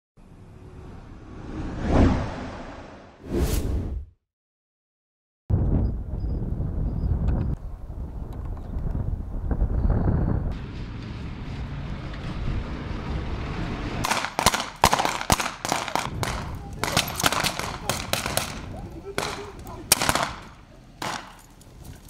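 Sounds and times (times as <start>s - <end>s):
low rumble: 0.2s - 4.1s
rapid gunshots: 14.1s - 21.4s.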